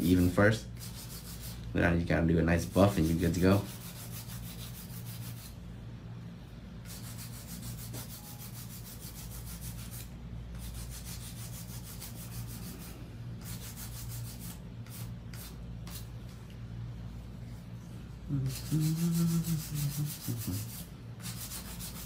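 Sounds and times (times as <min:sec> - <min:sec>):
nail file rasping: 0:18.4 - 0:22.0.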